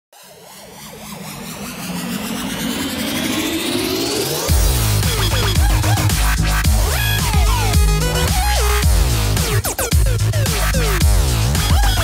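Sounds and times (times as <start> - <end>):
synthesized riser sweep: 0.1 - 12.0.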